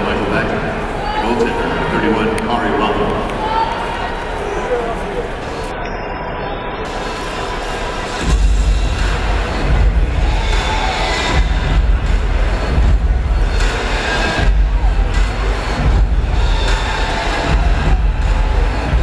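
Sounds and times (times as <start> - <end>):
crowd cheering: 0.1 - 5.7, 6.9 - 19.0
bass-heavy music over loudspeakers: 6.9 - 19.0.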